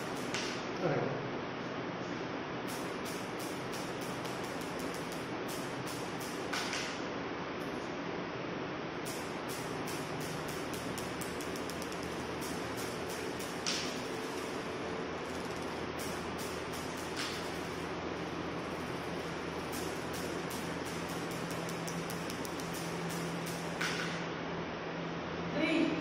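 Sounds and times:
steady background hiss: 0.0s - 26.0s.

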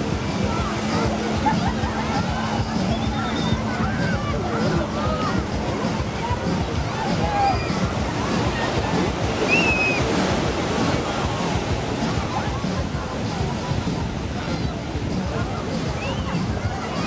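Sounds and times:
distant voices: 0.0s - 17.0s
surf breaking on beach: 0.0s - 17.0s
people shouting: 6.9s - 7.9s.

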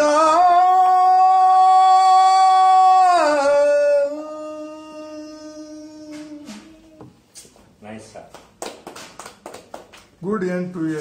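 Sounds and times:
man singing unaccompanied: 0.0s - 7.1s.

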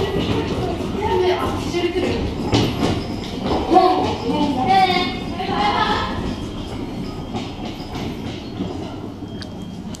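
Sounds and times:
railway station background noise: 0.0s - 10.0s.

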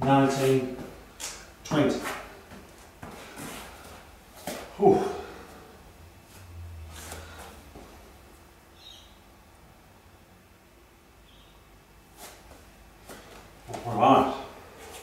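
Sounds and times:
man breathing hard: 4.8s - 5.8s.

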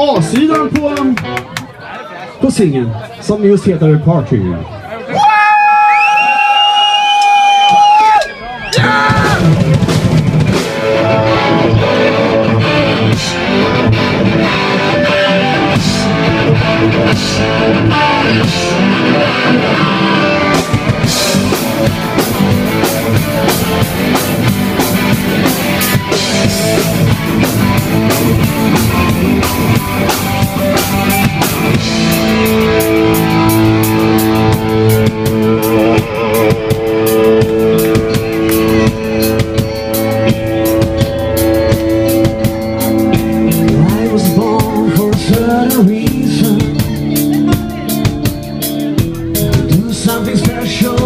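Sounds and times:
electric guitars playing: 0.0s - 1.9s, 8.3s - 51.0s
drum kit playing: 7.6s - 51.0s.

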